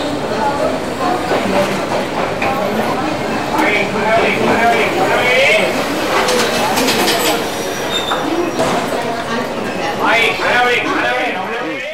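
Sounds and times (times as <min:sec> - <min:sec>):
train coaches rolling past: 0:00.0 - 0:11.9
rattling clicks of train wheels: 0:03.5 - 0:09.3
high wheel squeal: 0:06.3 - 0:08.8.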